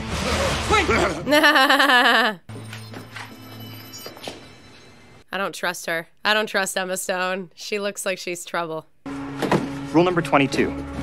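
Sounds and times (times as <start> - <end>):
woman laughing: 1.3 - 2.5.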